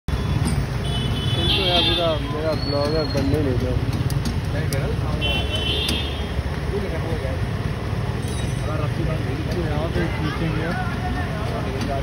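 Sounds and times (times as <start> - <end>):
vehicle engines rumbling: 0.1 - 12.0.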